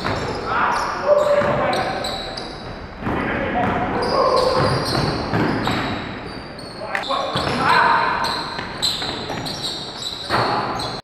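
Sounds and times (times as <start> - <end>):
basketball bouncing: 0.0 - 0.4, 1.3 - 2.0, 2.6 - 6.1, 7.3 - 7.8, 8.4 - 9.6
players calling out: 0.0 - 5.8
sneakers squeaking on court: 0.0 - 11.0.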